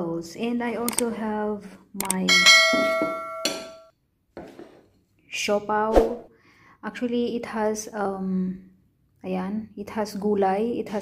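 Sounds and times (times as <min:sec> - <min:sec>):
bell chime ringing: 0:02.3 - 0:03.9.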